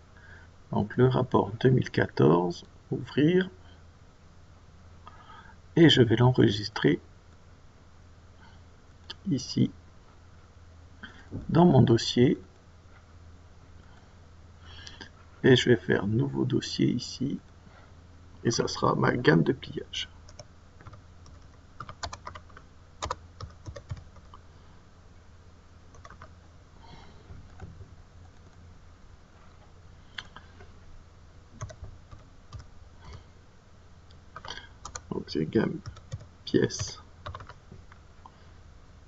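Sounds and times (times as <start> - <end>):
steady low hum: 0.0 - 39.0
computer keyboard typing: 20.3 - 24.4, 25.9 - 26.3, 31.6 - 32.7, 34.3 - 35.1, 35.8 - 37.6.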